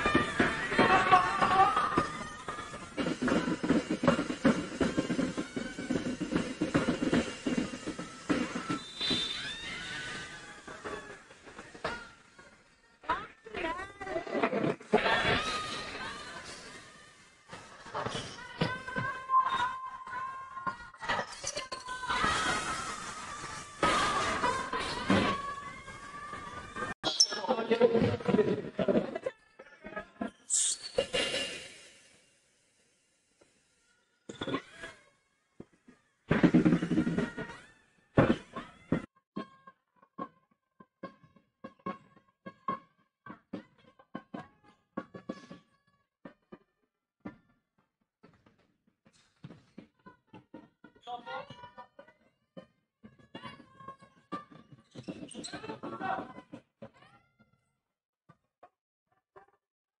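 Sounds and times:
sneakers squeaking: 27.0 - 27.8, 53.1 - 57.0
shoes squeaking: 54.8 - 56.0.

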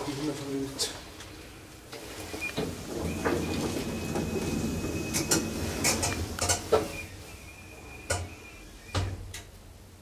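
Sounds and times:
elevator doors closing: 2.0 - 9.5.

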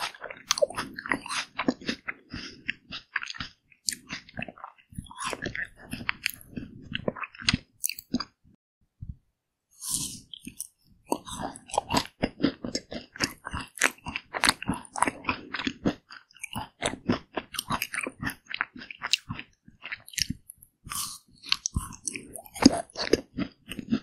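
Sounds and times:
chewing crunchy ice cream bar: 0.0 - 8.4, 9.8 - 24.0.

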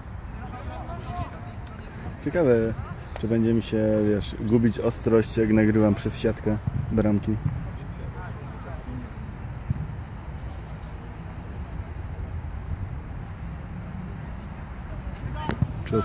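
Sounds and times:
distant players shouting: 0.3 - 3.2.

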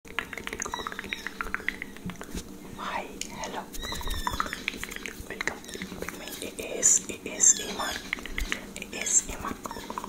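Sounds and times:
lip and tongue clicks: 0.1 - 2.3, 3.2 - 10.0
breathy whisper: 2.8 - 3.7, 5.3 - 10.0.

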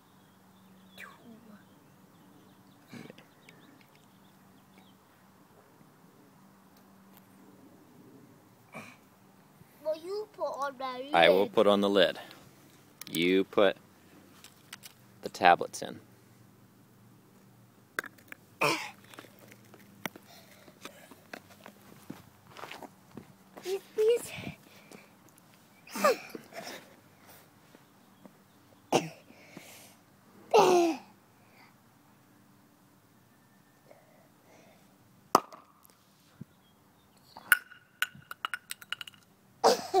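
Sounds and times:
person speaking: 10.0 - 12.2, 23.6 - 24.6
footsteps scuffing on asphalt: 20.8 - 23.7
sharp rocket pop: 35.3 - 35.8.

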